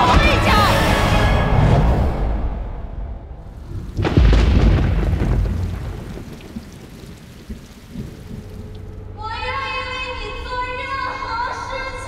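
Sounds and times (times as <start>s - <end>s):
deep boom rumbling: 1.5s - 9.6s
rain-like hiss: 3.5s - 9.2s.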